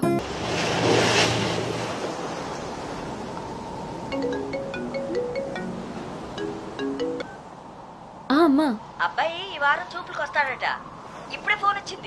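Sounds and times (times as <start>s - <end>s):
sea surf rushing: 0.0s - 8.1s
light background music: 4.2s - 7.4s.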